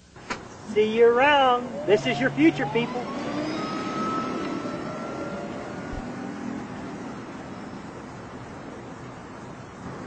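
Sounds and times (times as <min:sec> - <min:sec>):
tyre and road noise: 0:00.0 - 0:10.0
electric motor whine: 0:01.4 - 0:08.2.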